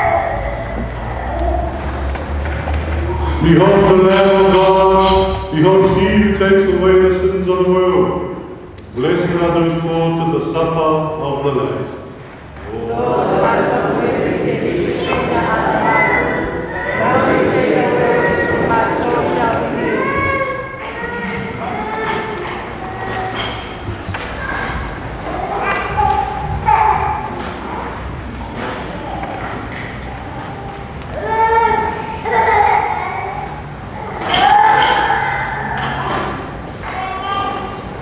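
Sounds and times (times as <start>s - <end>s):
choir singing a hymn: 12.7s - 20.7s.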